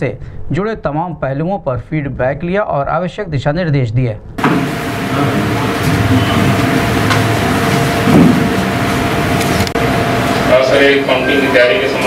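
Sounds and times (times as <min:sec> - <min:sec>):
fan and air conditioner hum: 0:00.0 - 0:12.0.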